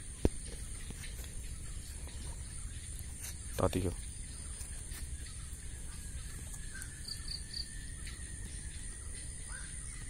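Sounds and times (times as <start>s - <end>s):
high-pitched insect drone: 1.4s - 10.0s.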